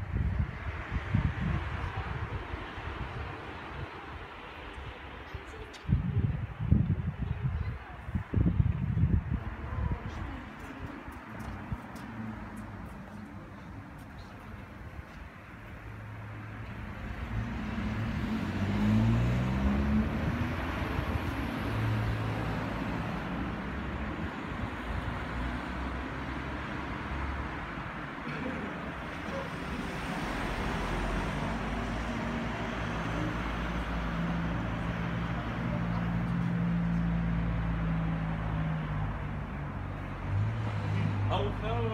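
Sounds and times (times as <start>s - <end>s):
traffic noise: 0.0s - 41.9s.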